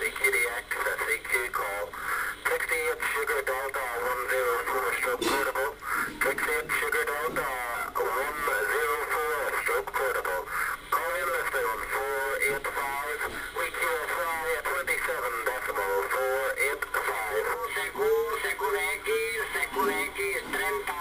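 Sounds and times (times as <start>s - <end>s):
static crackles: 0.0s - 21.0s
thin voice over radio: 0.0s - 21.0s.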